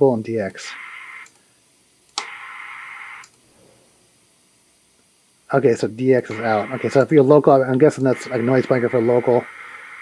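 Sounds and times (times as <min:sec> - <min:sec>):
radio receiver hiss: 0:00.0 - 0:03.8, 0:05.5 - 0:10.0.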